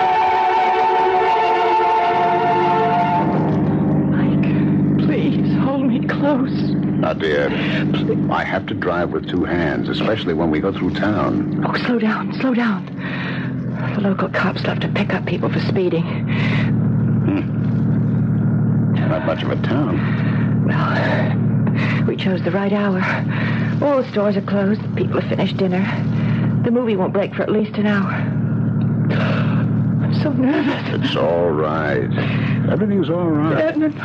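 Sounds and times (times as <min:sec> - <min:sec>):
music bridge: 0:00.0 - 0:05.1
car engine running: 0:00.0 - 0:34.0.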